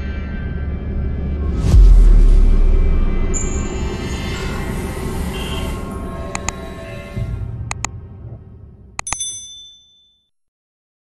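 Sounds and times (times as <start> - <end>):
quick clicks: 7.7 - 7.9
bright notification bell ding: 9.0 - 10.3.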